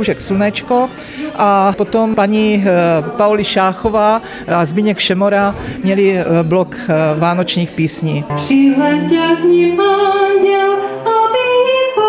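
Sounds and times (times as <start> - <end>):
woman singing a carol: 8.1 - 12.0.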